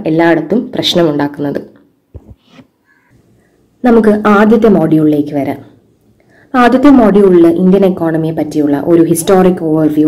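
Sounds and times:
woman speaking: 0.0 - 1.8, 3.8 - 5.8, 6.5 - 10.0.

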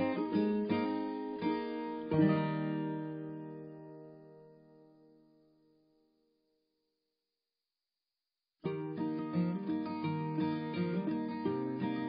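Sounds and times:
acoustic guitar plucked notes: 0.0 - 5.2, 8.6 - 12.0.

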